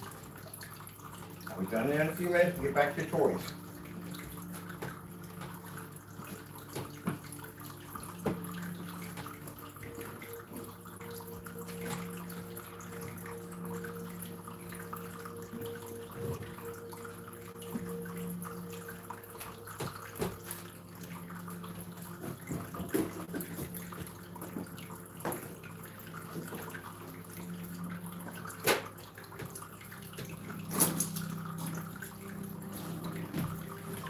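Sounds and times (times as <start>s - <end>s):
low hum of held tones: 0.0s - 34.0s.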